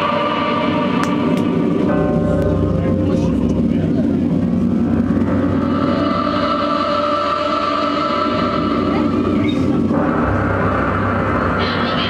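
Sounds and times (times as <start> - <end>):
low rumbling music over pa: 0.0 - 12.0
voices: 0.0 - 12.0.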